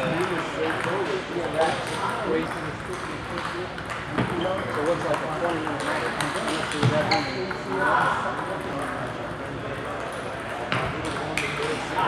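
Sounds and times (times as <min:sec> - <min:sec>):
voices in a large hall: 0:00.0 - 0:12.0.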